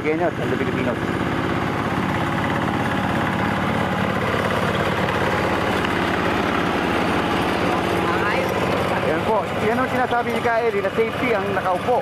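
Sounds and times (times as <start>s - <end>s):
hand tractor engine running: 0.0s - 12.0s.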